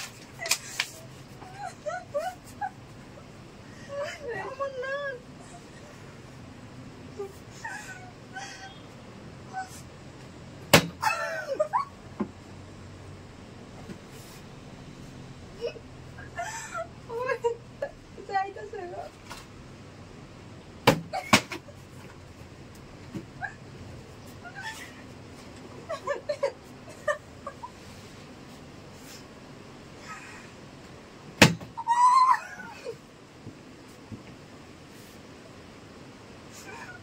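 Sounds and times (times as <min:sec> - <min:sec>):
high whimpering squeals: 0:24.3 - 0:25.2.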